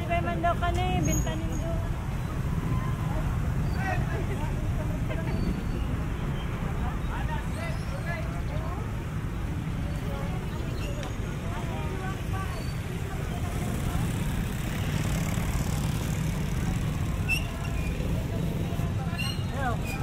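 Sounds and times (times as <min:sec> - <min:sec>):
chatter of passers-by: 0:00.0 - 0:20.0
low rumble of motor traffic: 0:00.0 - 0:20.0.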